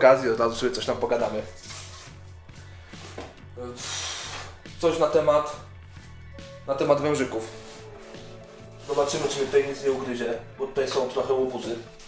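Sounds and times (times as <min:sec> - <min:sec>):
quiet background music: 0:00.0 - 0:12.0
short hiss: 0:03.8 - 0:04.6.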